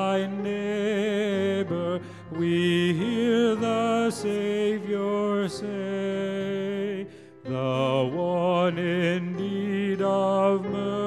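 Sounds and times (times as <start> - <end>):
grand piano: 0.0 - 11.0
man singing a hymn: 0.0 - 11.0.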